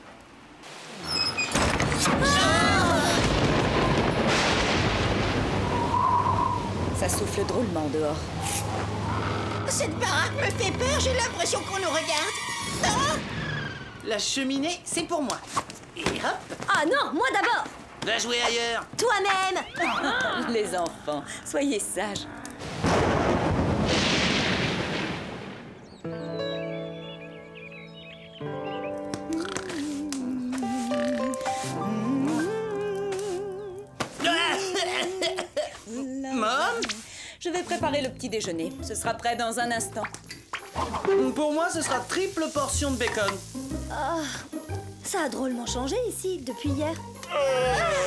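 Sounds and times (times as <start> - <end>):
heavy rain: 0.0 - 14.5, 22.6 - 25.8, 41.6 - 44.5
wind gusts: 0.0 - 26.1
hissing rush: 2.5 - 14.4
deep rumble: 3.1 - 14.1
wavering wind whistle: 5.6 - 7.0.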